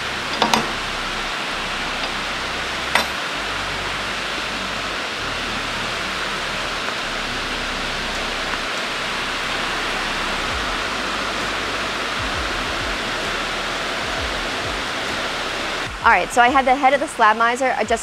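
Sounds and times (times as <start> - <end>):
heavy rain on metal roof: 0.0 - 17.4.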